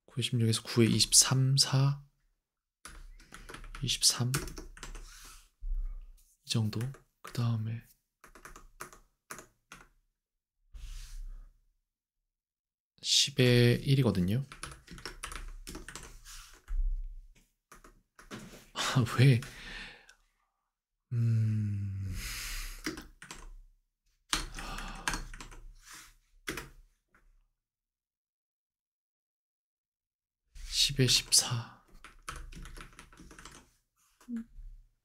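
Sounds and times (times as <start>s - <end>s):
faint keyboard typing: 2.8s - 5.1s, 6.5s - 7.6s, 8.2s - 10.0s, 14.4s - 18.5s, 22.8s - 23.6s, 24.3s - 25.7s, 26.5s - 26.8s, 31.1s - 34.4s.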